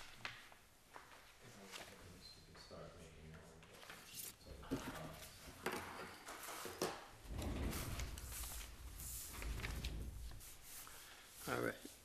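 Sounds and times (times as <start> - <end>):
paper rustling: 3.6 - 5.5, 6.1 - 12.0.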